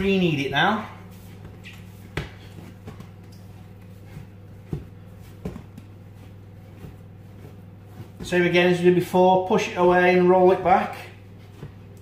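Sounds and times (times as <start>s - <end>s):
steady low hum: 0.0s - 12.0s
dough thumping on worktop: 1.4s - 8.5s.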